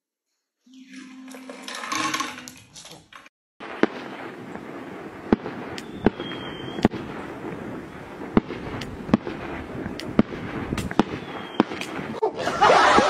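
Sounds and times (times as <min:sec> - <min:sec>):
firecrackers banging: 0:03.6 - 0:13.0
brief high whistle: 0:05.8 - 0:06.8.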